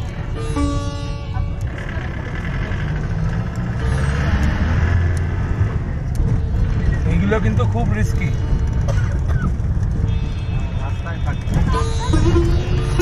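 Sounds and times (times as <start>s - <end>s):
sitar music: 0.0s - 13.0s
vehicle on rough road rumble: 0.0s - 13.0s.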